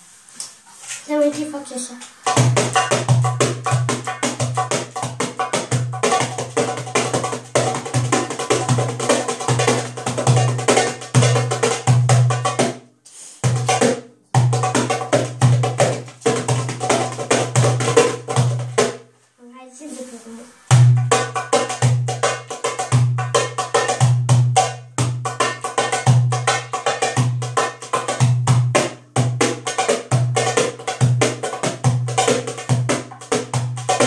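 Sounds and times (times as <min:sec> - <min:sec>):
goblet drum played by hand: 0:02.2 - 0:19.0, 0:20.7 - 0:34.0.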